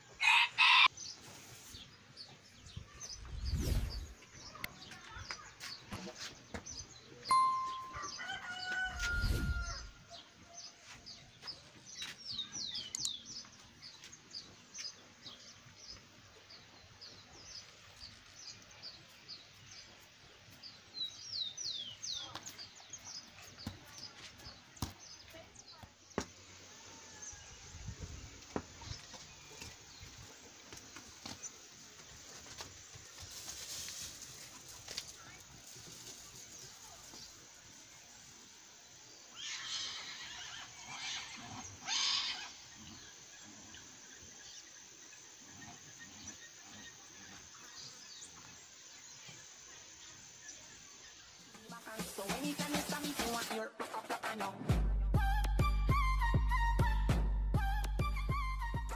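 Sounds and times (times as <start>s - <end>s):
small birds chirping: 0.0s - 53.6s
rooster crowing: 8.0s - 10.0s
light outdoor hiss: 8.0s - 53.6s
hooves trotting on dry ground: 10.6s - 26.4s, 28.1s - 37.4s.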